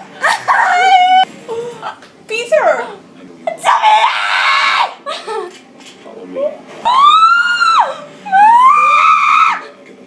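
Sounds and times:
girl screaming: 0:03.7 - 0:05.0, 0:06.9 - 0:09.6.

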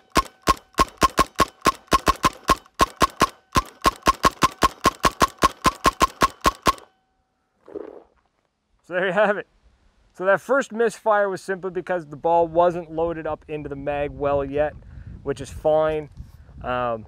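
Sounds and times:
paintball marker firing rapidly: 0:00.0 - 0:06.9.

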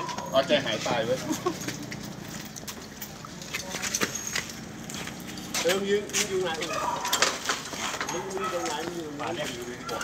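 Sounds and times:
people talking: 0:08.1 - 0:10.0.

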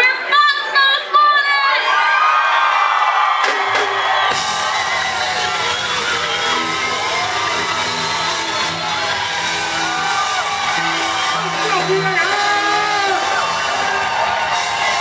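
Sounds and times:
crowd cheering and shouting: 0:00.0 - 0:15.0
funk band playing: 0:03.4 - 0:15.0.

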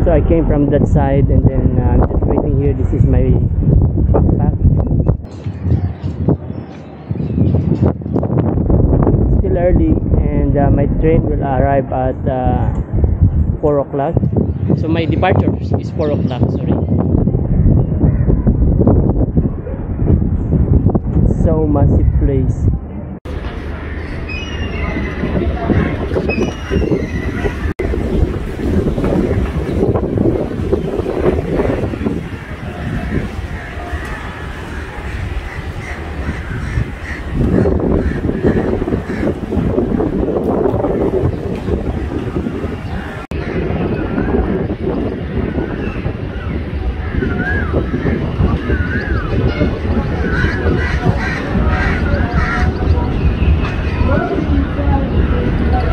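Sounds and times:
wind rumble on microphone: 0:00.0 - 0:55.9
indistinct voices: 0:21.4 - 0:45.0, 0:46.7 - 0:55.9.

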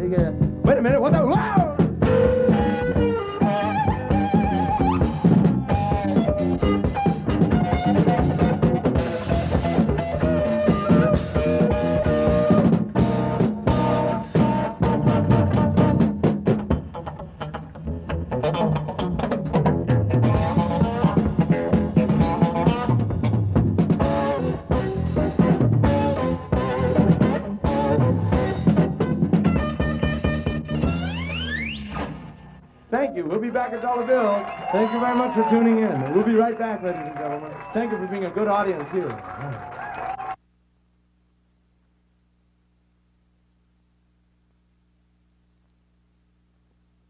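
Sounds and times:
drum kit: 0:00.0 - 0:32.4
electric guitar: 0:00.0 - 0:32.9
bass guitar: 0:00.0 - 0:34.1.

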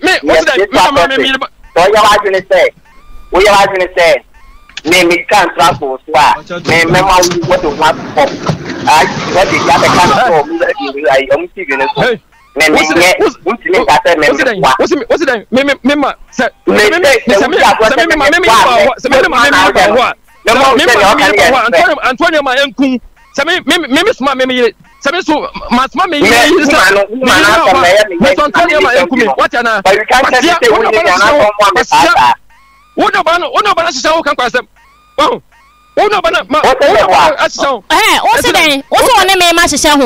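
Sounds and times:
person talking emphatically: 0:00.0 - 0:04.2, 0:04.8 - 0:08.3, 0:08.9 - 0:32.4, 0:33.0 - 0:35.4, 0:36.0 - 0:40.0
person speaking rapidly: 0:00.0 - 0:32.4, 0:33.0 - 0:35.4, 0:36.0 - 0:40.0.

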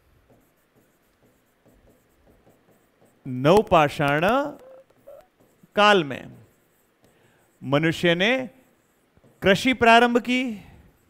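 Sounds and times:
marker squeaking on whiteboard: 0:00.3 - 0:07.7.

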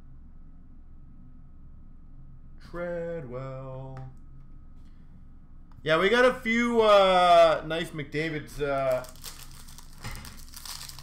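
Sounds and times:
card pack wrapper crinkling: 0:08.8 - 0:11.0.

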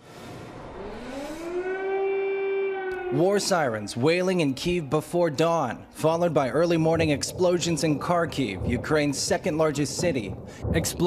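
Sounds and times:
rushing noise: 0:00.0 - 0:04.0
air-raid siren wailing: 0:00.6 - 0:04.3.

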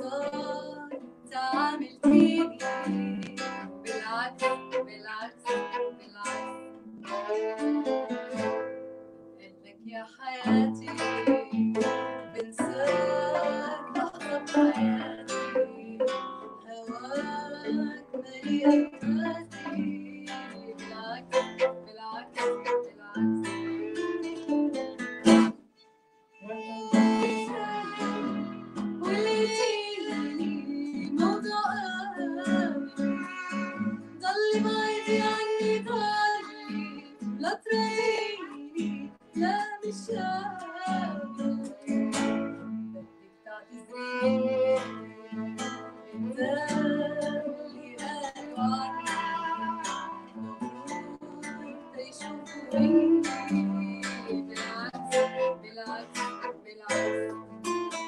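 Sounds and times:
woman singing: 0:00.0 - 0:07.4, 0:09.4 - 0:25.0, 0:26.4 - 0:57.6
strummed acoustic guitar: 0:00.0 - 0:58.0
violin: 0:00.0 - 0:58.0.

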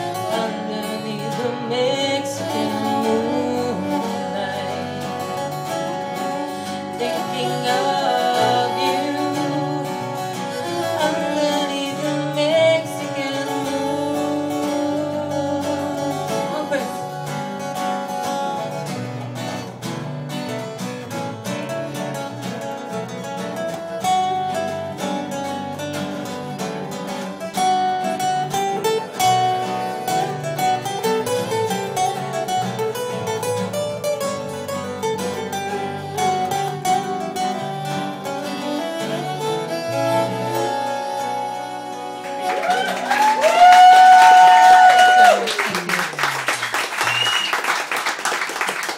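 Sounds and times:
fiddle melody: 0:00.0 - 0:45.2
strummed acoustic guitars: 0:00.0 - 0:48.9.

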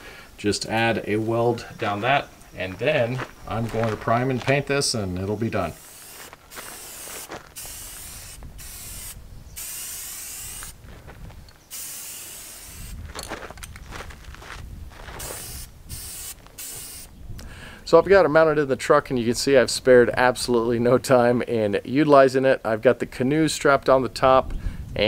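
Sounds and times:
spray-paint can spraying: 0:05.7 - 0:10.8, 0:11.7 - 0:13.0, 0:15.2 - 0:17.1.

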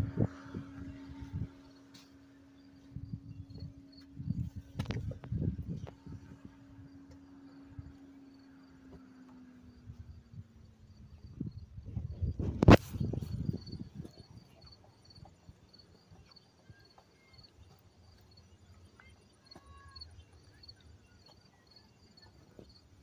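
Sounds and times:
low hum: 0:00.0 - 0:14.5.

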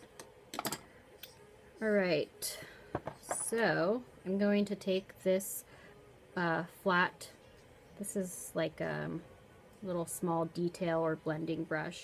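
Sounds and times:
woman speaking: 0:01.8 - 0:02.6, 0:03.2 - 0:05.6, 0:08.0 - 0:09.2, 0:09.8 - 0:12.0.

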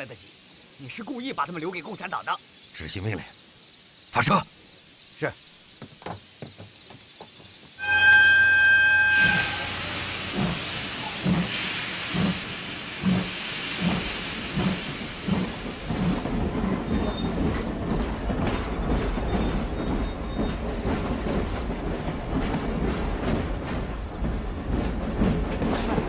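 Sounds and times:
steam locomotive whistle: 0:07.8 - 0:11.5
steam hissing: 0:07.8 - 0:19.7
steam engine chuffing: 0:09.5 - 0:21.3.

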